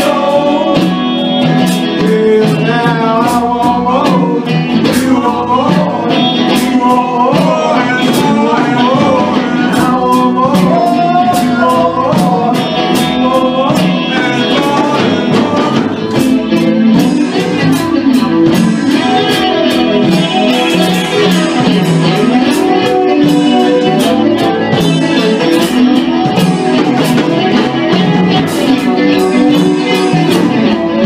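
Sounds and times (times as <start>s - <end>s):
congas: 0.0s - 31.0s
drum kit: 0.0s - 31.0s
electric guitar melody: 0.0s - 31.0s.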